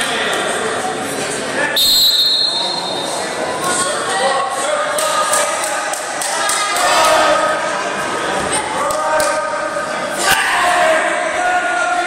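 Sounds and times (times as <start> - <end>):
spectators and coaches calling out: 0.0 - 12.0.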